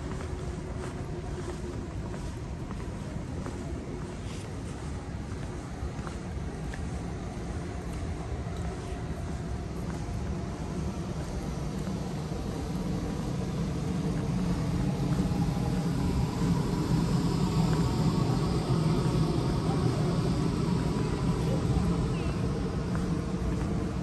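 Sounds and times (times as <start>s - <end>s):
low mechanical rumble: 0.0s - 24.0s.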